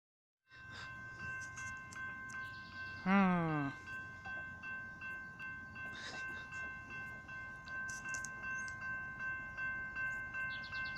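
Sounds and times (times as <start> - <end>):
crossing warning bell ringing: 0.5 - 10.9.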